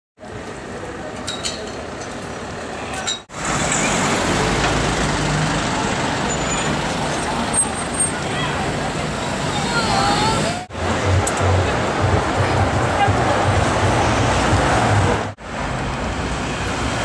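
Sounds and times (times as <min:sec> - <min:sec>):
city street traffic: 0:00.2 - 0:17.0
voices of passers-by: 0:00.2 - 0:17.0.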